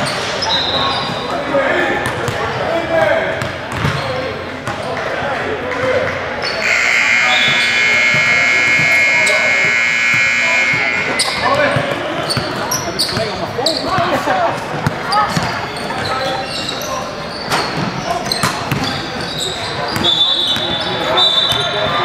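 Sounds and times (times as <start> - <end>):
players' voices: 0.0 - 22.0
basketballs bouncing on hardwood: 3.7 - 4.0
scoreboard buzzer: 6.5 - 11.9.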